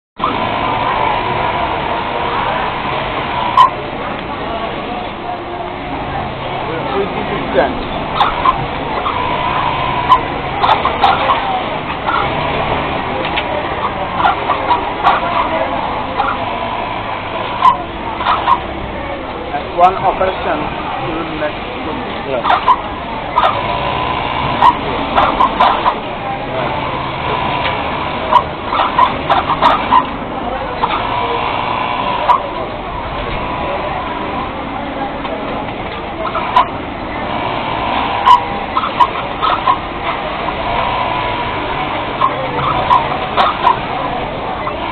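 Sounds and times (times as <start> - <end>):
sewing machines running: 5.9 - 14.2, 14.9 - 29.3.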